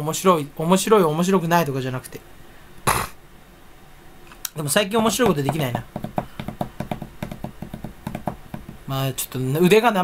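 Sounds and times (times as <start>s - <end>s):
faint low steady hum: 0.0s - 10.0s.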